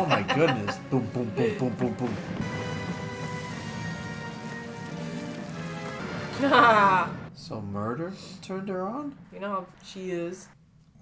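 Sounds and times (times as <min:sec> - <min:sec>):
film score with held chords: 0:00.0 - 0:07.4.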